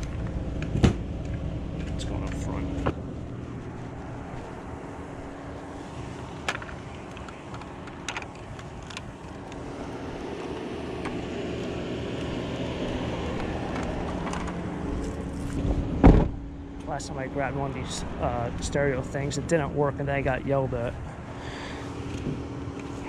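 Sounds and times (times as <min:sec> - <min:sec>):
vehicle engine humming: 0:00.0 - 0:23.0.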